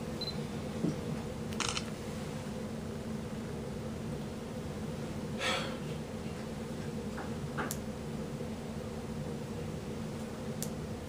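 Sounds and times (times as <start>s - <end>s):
low room hum: 0.0s - 11.0s
camera shutter click: 1.6s - 1.9s.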